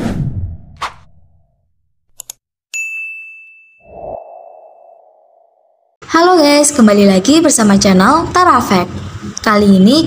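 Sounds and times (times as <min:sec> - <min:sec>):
bright bell ding: 0:02.7 - 0:03.9.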